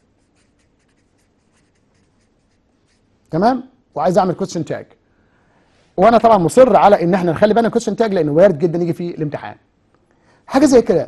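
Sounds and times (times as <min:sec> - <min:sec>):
marker writing on paper: 0:00.0 - 0:03.1.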